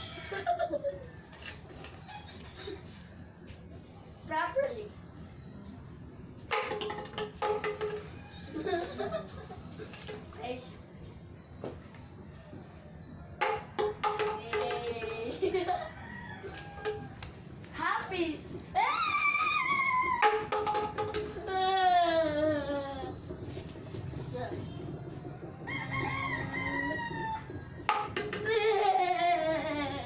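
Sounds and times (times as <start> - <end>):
rooster crowing: 0.0 - 3.0, 15.7 - 17.3, 25.5 - 27.8
plastic bottle knocking on tiles: 6.5 - 8.2, 13.4 - 15.6, 20.1 - 21.5, 27.8 - 28.9.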